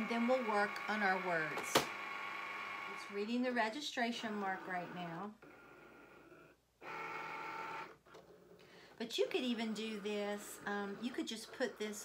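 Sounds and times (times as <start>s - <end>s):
cutting machine motors whirring: 0.0s - 3.6s, 4.2s - 8.3s, 9.2s - 12.0s.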